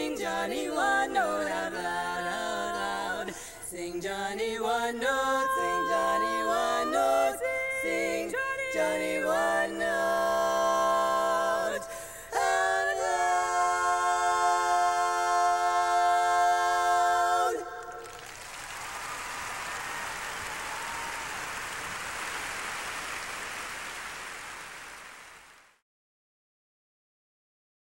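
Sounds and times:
women singing a cappella harmony: 0.0 - 18.0
audience applause: 17.8 - 25.8.

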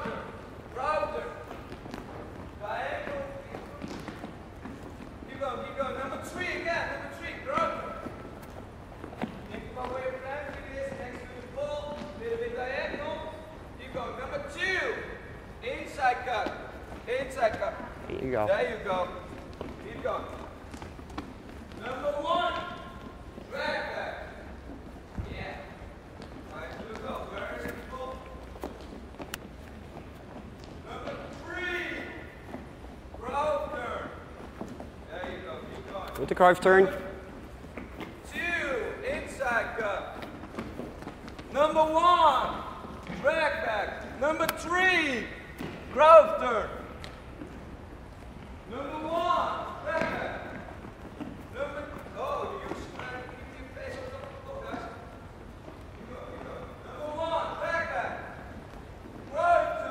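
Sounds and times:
soccer balls thudding: 0.0 - 6.4, 7.0 - 13.5, 18.8 - 36.1, 49.4 - 56.7.

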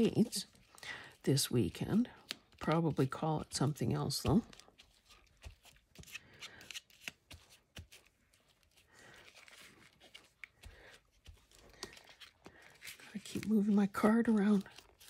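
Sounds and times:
paper rustling: 2.2 - 15.0.

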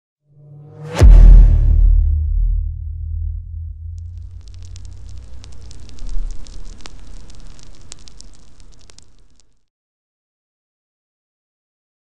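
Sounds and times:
low boom: 0.7 - 8.0
deep steady rumble: 1.0 - 8.8
fire crackling: 3.7 - 9.6.

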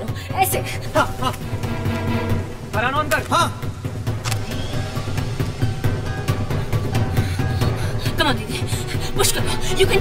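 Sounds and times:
music with pulsing low beat: 0.0 - 10.0.

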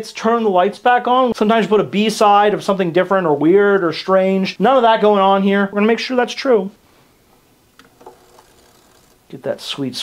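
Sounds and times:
room hiss: 0.0 - 10.0.

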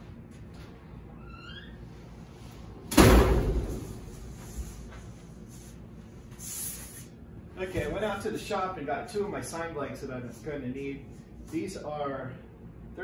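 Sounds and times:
faint squeaks: 1.1 - 2.2
metal sheet bang: 2.9 - 4.2.

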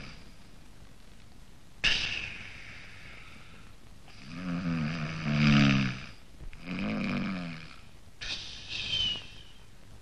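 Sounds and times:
man snoring: 4.2 - 7.8.

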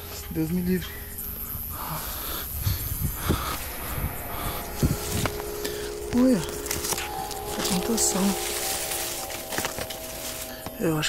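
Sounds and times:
plants and grass rustling: 0.0 - 11.0.

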